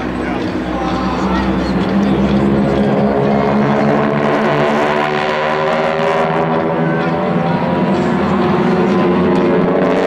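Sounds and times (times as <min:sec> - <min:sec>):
propeller aircraft engines droning: 0:00.0 - 0:10.0.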